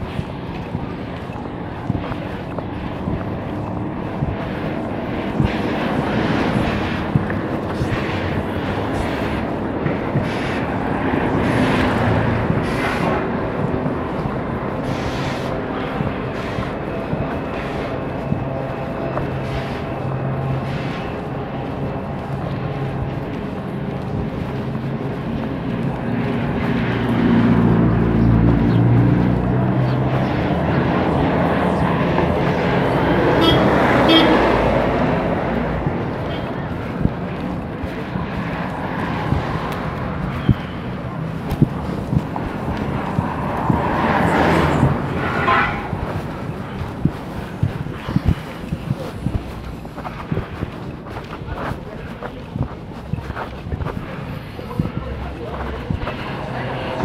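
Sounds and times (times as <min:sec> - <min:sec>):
vehicle engine humming: 0:00.0 - 0:57.0
vehicle passing: 0:00.0 - 0:57.0.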